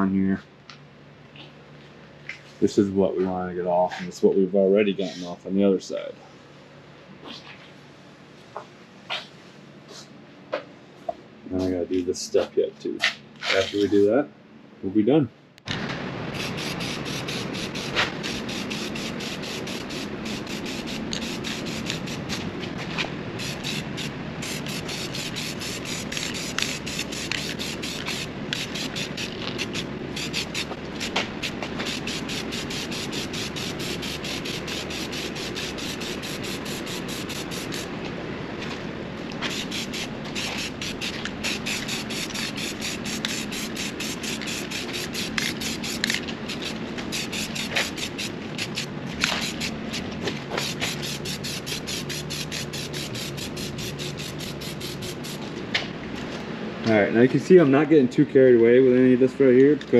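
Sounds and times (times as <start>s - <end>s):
aerosol spray can hissing: 16.3s - 22.5s, 23.4s - 37.9s, 39.5s - 55.4s.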